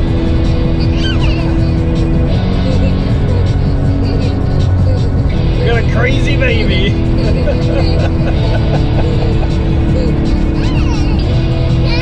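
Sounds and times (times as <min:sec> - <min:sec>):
music: 0:00.0 - 0:12.0
road and engine rumble: 0:00.0 - 0:12.0
high-pitched voice: 0:00.8 - 0:08.2, 0:09.9 - 0:12.0.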